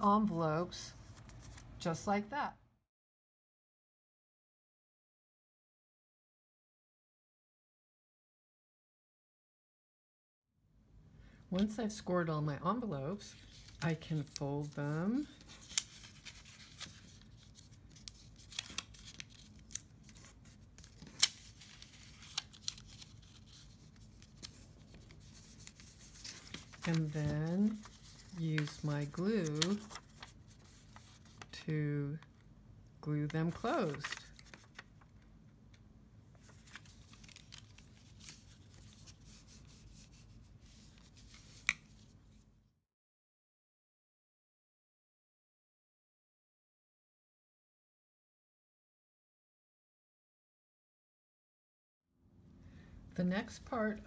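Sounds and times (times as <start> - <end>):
paper crackling as folded: 13.3 - 31.5, 33.4 - 35.1, 36.4 - 42.3.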